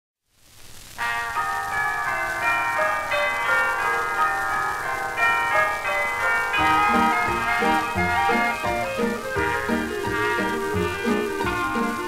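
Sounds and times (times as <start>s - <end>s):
record surface hiss: 0.2s - 12.0s
dance-band fox-trot record: 5.2s - 12.0s.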